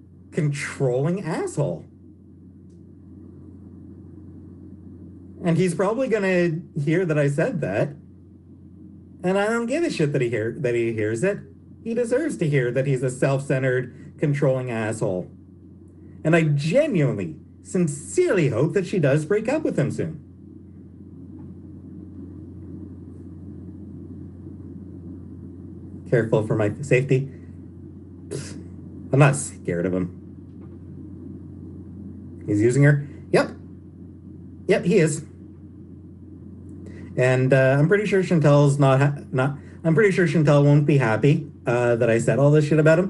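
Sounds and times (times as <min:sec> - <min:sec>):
low room hum: 0:00.0 - 0:43.0.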